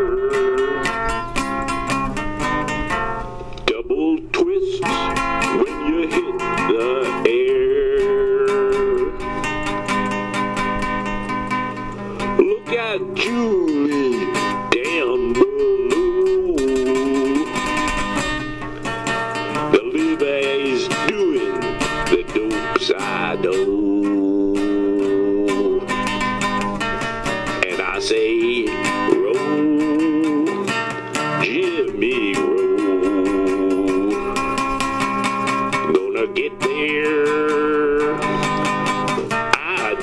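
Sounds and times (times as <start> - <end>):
acoustic guitar strumming chords: 0.0 - 40.0.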